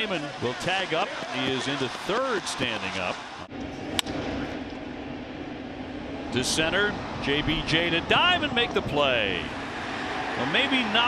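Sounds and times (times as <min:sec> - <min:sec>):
ballpark ambience hum: 0:00.0 - 0:11.0.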